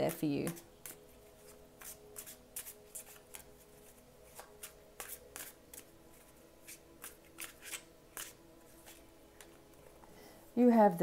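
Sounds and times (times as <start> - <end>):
cards being shuffled: 0.4 - 9.6.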